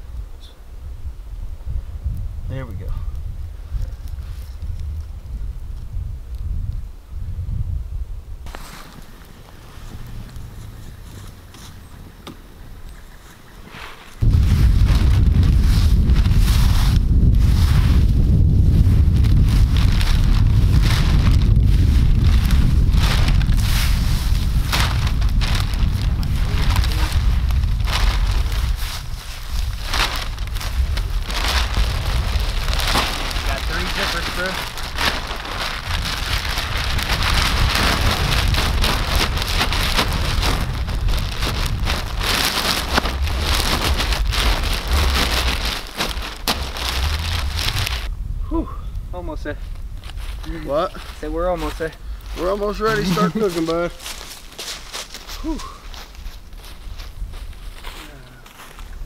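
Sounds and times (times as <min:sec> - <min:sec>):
wind rumble on microphone: 0:00.0 - 0:13.1, 0:14.2 - 0:59.0
campfire crackling: 0:03.1 - 0:57.9
plastic bag crinkling on leaves: 0:14.0 - 0:48.1, 0:49.9 - 0:59.0.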